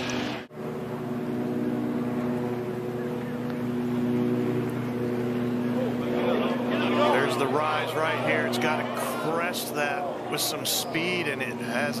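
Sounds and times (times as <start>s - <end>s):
engine drone: 0.0s - 12.0s
even pitched hum: 0.0s - 12.0s.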